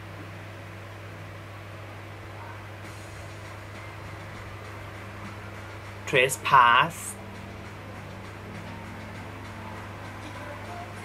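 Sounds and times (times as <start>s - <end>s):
low hum: 2.4s - 11.0s.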